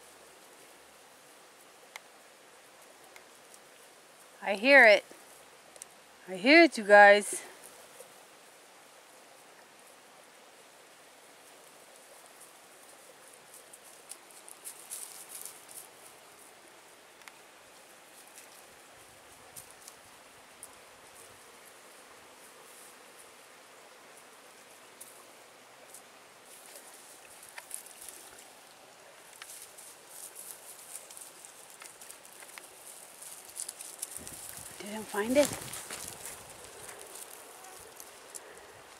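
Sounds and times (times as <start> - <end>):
faint rustling: 11.4 - 23.4, 25.9 - 38.9
leaves and twigs crackling: 11.4 - 38.9.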